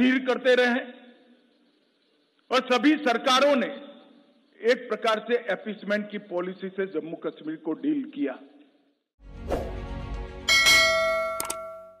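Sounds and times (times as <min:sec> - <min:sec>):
bell-like jingle chime: 0:10.5 - 0:12.0.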